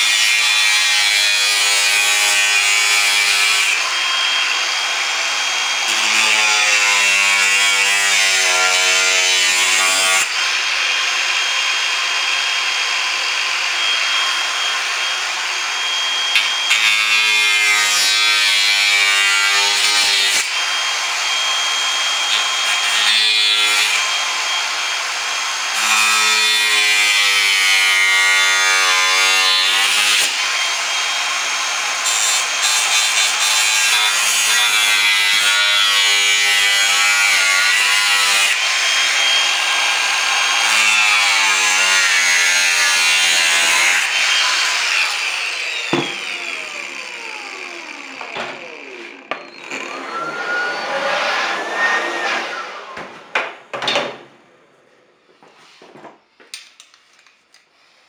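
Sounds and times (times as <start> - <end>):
angle grinder cutting metal: 0.0 - 55.0.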